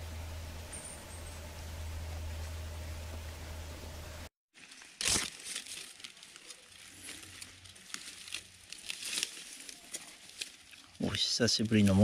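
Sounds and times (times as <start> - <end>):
dry leaves rustling: 4.5 - 12.0
loud crunch: 4.6 - 10.9.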